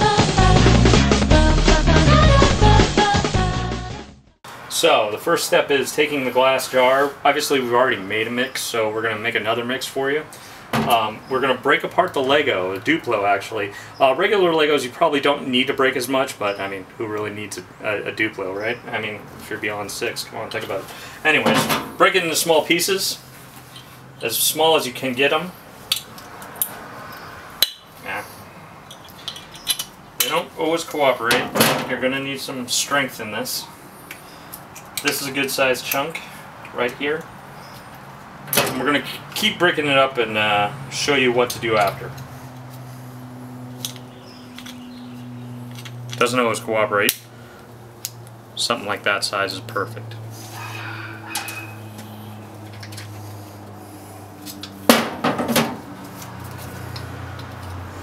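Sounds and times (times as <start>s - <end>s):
pliers clacking on steel: 28.9s - 30.4s, 43.8s - 44.9s.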